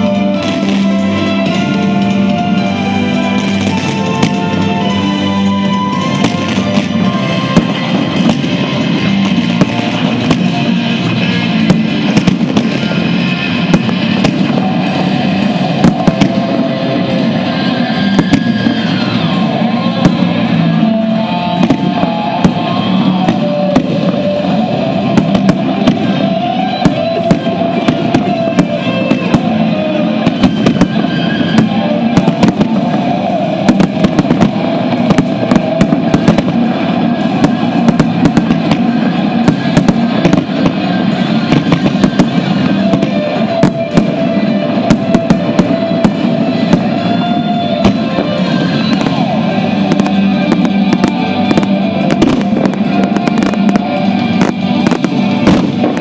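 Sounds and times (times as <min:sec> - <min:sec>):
fireworks bursting: 0:00.0 - 0:56.0
music with sustained tones: 0:00.0 - 0:56.0.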